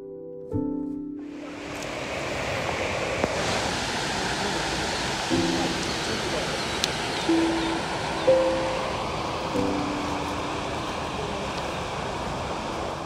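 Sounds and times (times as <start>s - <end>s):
soft background music: 0.0s - 1.9s, 5.3s - 6.5s, 7.3s - 11.3s
water pouring from dam outlet: 1.4s - 13.0s.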